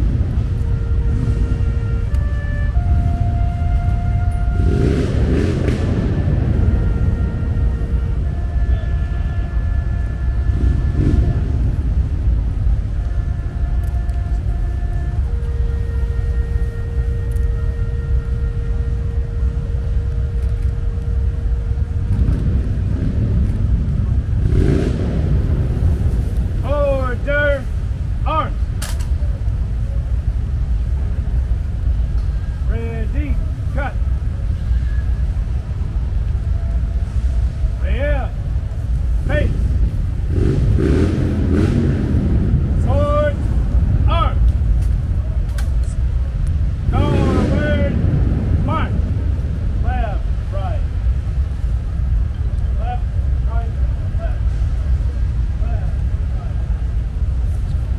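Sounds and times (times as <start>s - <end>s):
city traffic rumble: 0.0s - 57.9s
sharp click: 28.8s - 29.2s.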